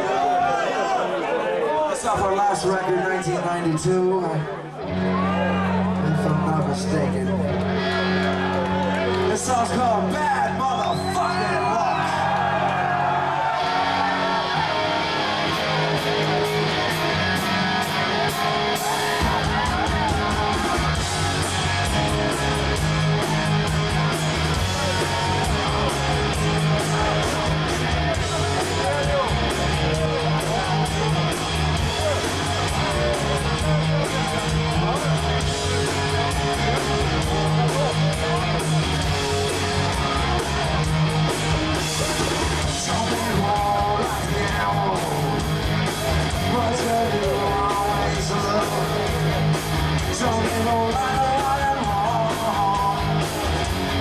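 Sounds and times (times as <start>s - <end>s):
bass guitar: 4.7s - 54.0s
live punk rock band: 4.8s - 54.0s
electric guitar riff: 13.1s - 54.0s.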